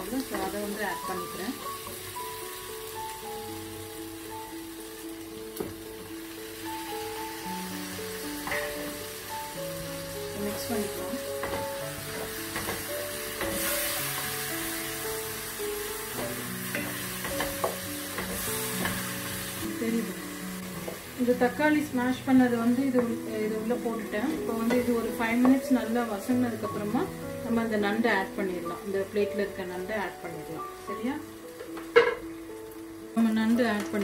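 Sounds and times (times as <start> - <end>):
food sizzling in a frying pan: 0.0 - 34.0
soft background music: 0.0 - 34.0.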